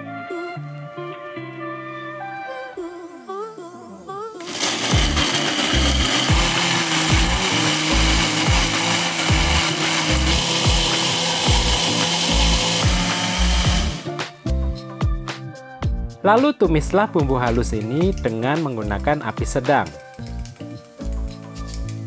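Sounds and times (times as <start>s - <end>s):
electric blender grinding: 4.4s - 14.2s.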